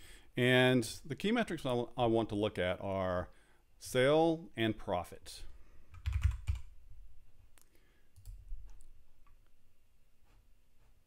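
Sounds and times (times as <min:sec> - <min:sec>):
computer keyboard typing: 0:05.9 - 0:06.7.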